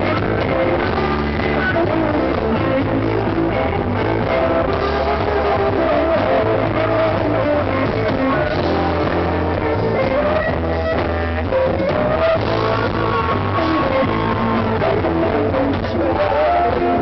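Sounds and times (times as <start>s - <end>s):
bass line: 0.0s - 17.0s
drums: 0.0s - 17.0s
electric guitars: 0.0s - 17.0s.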